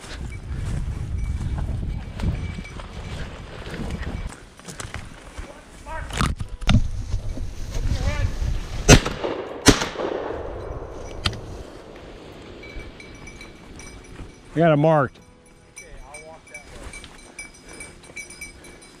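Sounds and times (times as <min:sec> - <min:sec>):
shotgun shots: 0:08.8 - 0:11.0
gunshot echo: 0:08.8 - 0:12.3.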